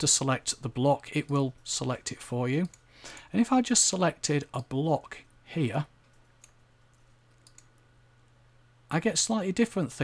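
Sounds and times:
low steady hum: 0:00.0 - 0:10.0
man speaking: 0:03.3 - 0:05.9
computer mouse click: 0:06.0 - 0:07.8.

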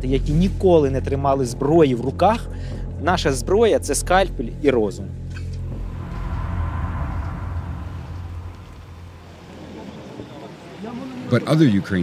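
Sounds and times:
low rumbling hum: 0:05.5 - 0:10.1.

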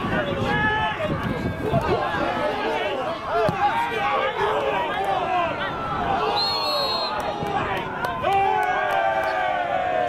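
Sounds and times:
men shouting and calling out: 0:00.0 - 0:10.0.

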